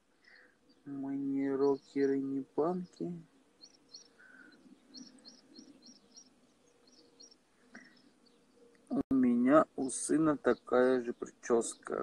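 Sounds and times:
faint bird chirping: 0:00.0 - 0:12.0.

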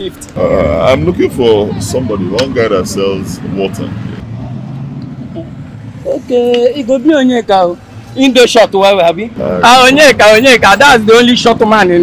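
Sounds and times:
car engine rumble: 0:00.0 - 0:12.0
road traffic: 0:00.0 - 0:12.0.

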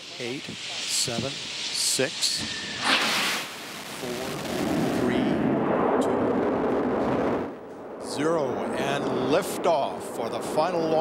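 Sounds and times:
rocket engines hissing: 0:00.0 - 0:05.6, 0:08.0 - 0:11.0.

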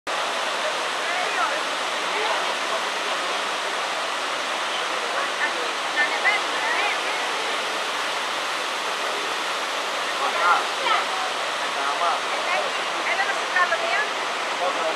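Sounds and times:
waterfall rushing into pool: 0:00.1 - 0:14.9.

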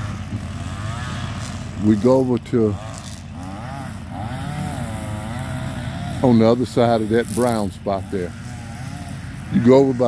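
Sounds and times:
string trimmer engine running: 0:00.0 - 0:10.0.

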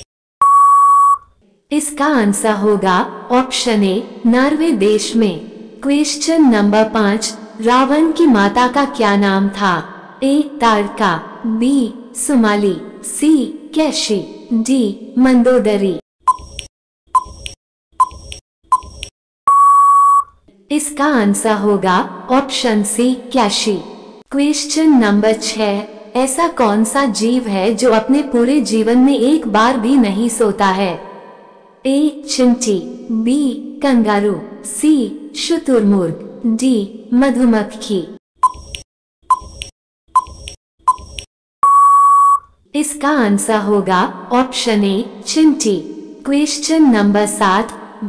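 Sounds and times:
short electronic beeps: 0:00.0 - 0:01.3, 0:16.3 - 0:20.4, 0:38.4 - 0:42.5
long steady beep: 0:00.4 - 0:01.3, 0:19.5 - 0:20.4, 0:41.6 - 0:42.5.

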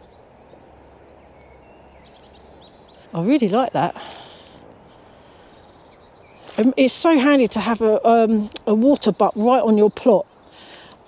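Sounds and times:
birds chirping and whistling: 0:00.0 - 0:03.3, 0:04.1 - 0:06.7
outdoor background hum: 0:00.0 - 0:11.0.

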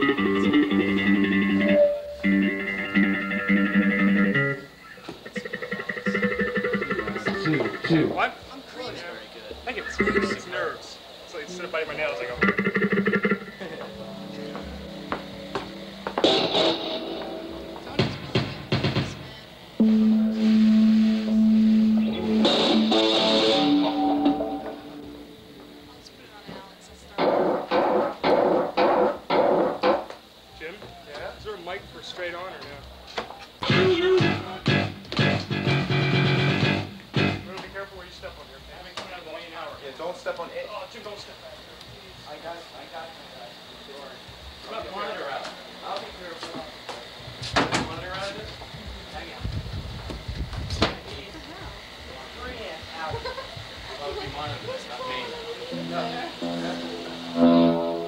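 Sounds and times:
amplified electric guitar: 0:00.0 - 0:08.2, 0:12.4 - 0:26.4, 0:33.6 - 0:37.6, 0:55.0 - 0:58.0
bass guitar: 0:00.0 - 0:08.2, 0:12.3 - 0:26.0, 0:33.6 - 0:37.6, 0:55.7 - 0:58.0.

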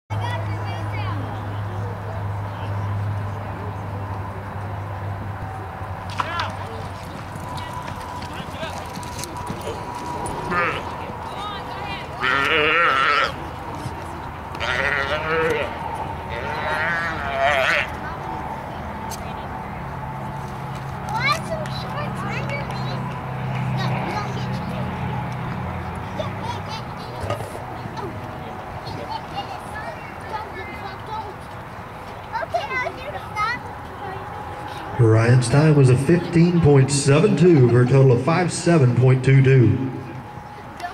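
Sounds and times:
crowd voices: 0:00.1 - 0:40.9
horse hooves on dirt: 0:06.1 - 0:14.8.

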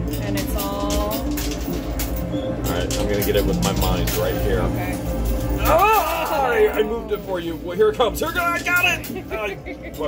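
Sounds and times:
arcade machine music: 0:00.0 - 0:10.0
coins clinking: 0:00.0 - 0:10.0.

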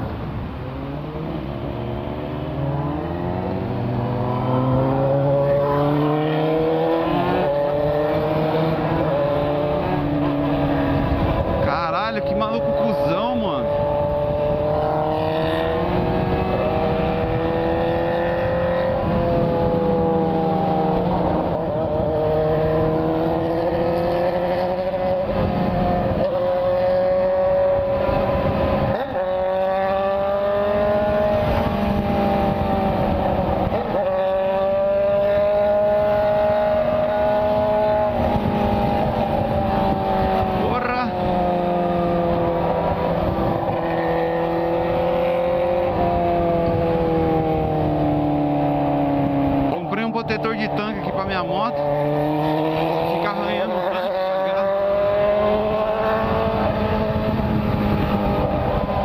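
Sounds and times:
motorcycle engine at speed: 0:00.0 - 0:59.0
wind rush on microphone: 0:00.0 - 0:59.0.

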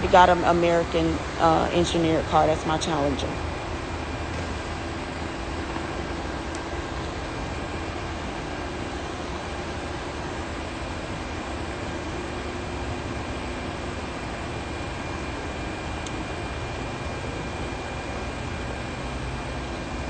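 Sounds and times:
faint constant hum: 0:00.0 - 0:20.0.

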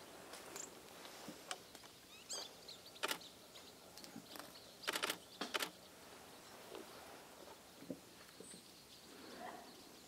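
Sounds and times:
short sharp clicks: 0:03.0 - 0:03.2.

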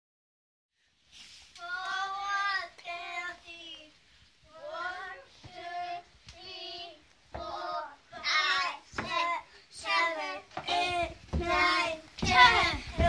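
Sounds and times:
children singing together: 0:01.6 - 0:13.0.

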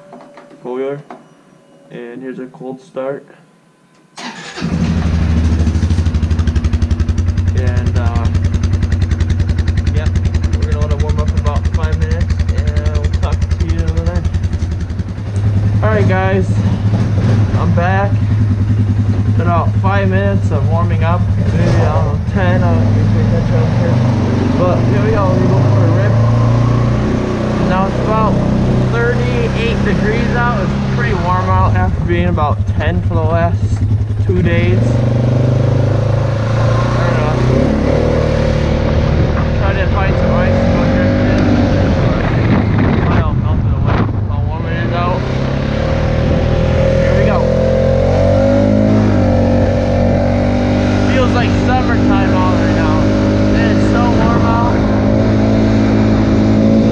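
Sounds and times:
engine idling: 0:04.2 - 0:56.6.

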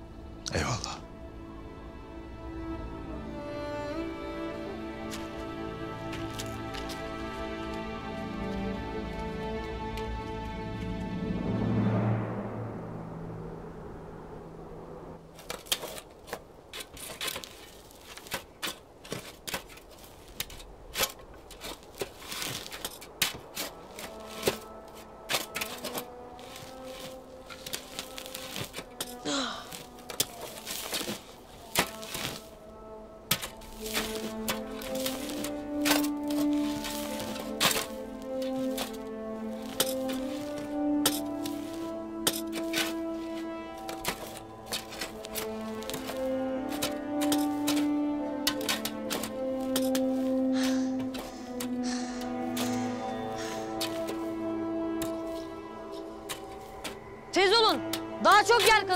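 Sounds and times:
background score music: 0:00.0 - 0:58.9
shovels digging into soil: 0:15.4 - 0:32.6, 0:33.3 - 0:57.0, 0:57.9 - 0:58.9.

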